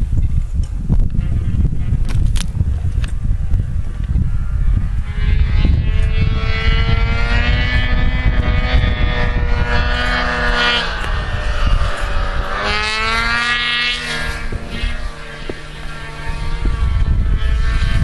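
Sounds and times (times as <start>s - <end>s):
snowmobile engine revving: 4.2s - 18.0s.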